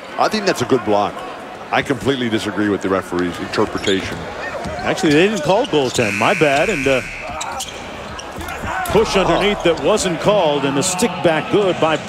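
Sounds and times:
arena crowd noise: 0.0s - 12.0s
basketball bouncing on court: 6.0s - 10.0s.

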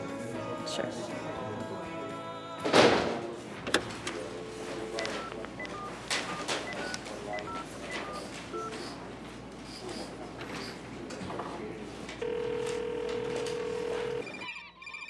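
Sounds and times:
telephone key tones: 4.9s - 8.2s, 12.2s - 14.4s.

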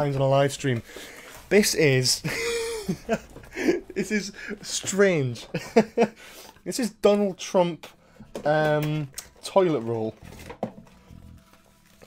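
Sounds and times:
person laughing: 2.2s - 4.7s, 5.5s - 6.2s.

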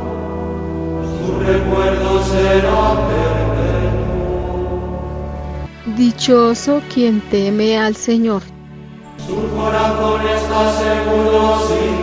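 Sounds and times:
chant-like singing voices: 0.0s - 6.1s, 9.0s - 12.0s
sustained chords: 0.0s - 12.0s.

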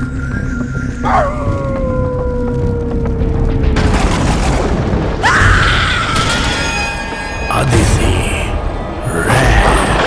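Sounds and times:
low rumbling with booms: 0.1s - 6.3s.

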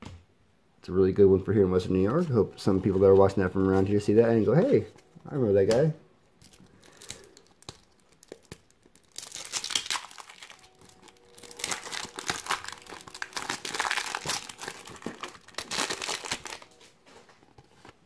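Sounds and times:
plastic wrapper crinkling: 6.4s - 16.8s
wrapper tearing: 6.4s - 16.8s.

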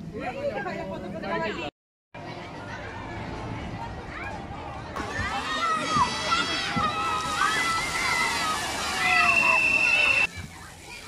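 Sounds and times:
children shrieking and shouting: 5.0s - 11.0s
water splashing: 5.0s - 11.0s.

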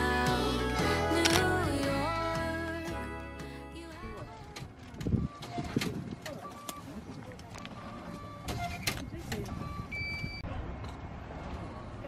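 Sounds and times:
background chatter: 3.9s - 10.8s
short electronic beeps: 7.6s - 10.5s.

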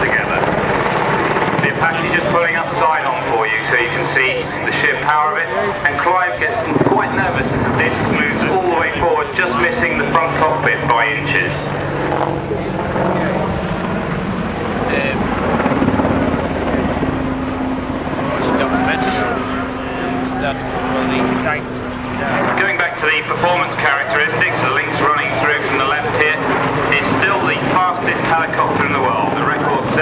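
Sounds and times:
helicopter engine and rotor drone: 0.0s - 30.0s
voices: 0.0s - 30.0s.

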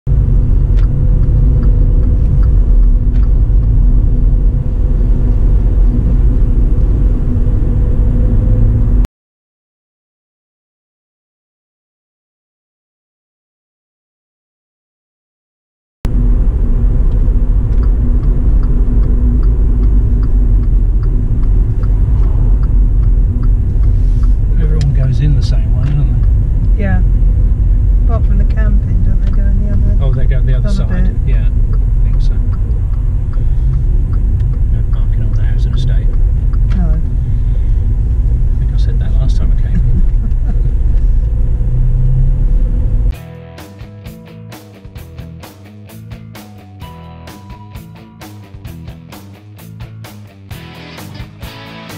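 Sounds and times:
car cabin road and engine rumble: 0.1s - 9.1s, 16.1s - 43.2s
indistinct voices: 21.3s - 27.1s, 28.0s - 37.1s
guitar music: 43.2s - 51.9s.

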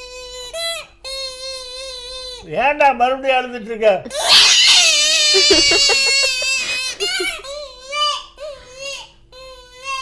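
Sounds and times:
man imitating baby crying: 4.1s - 7.5s.

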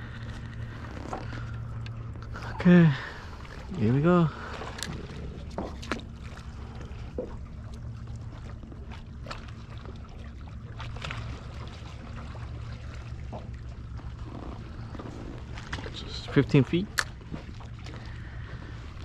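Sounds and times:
low rumble of water and wind: 0.0s - 19.0s
waves lapping against kayak hull: 0.0s - 19.0s.

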